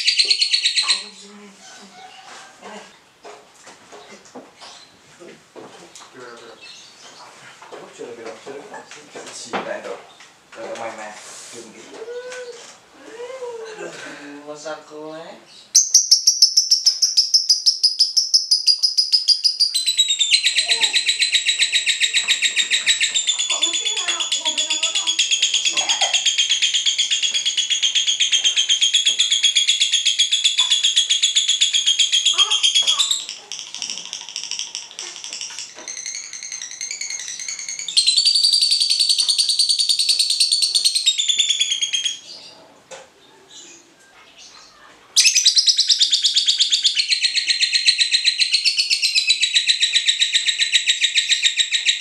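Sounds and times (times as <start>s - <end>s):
lovebird chattering trill: 0.0s - 1.2s, 15.8s - 42.5s, 45.2s - 52.0s
soft bird chatter: 15.4s - 52.0s.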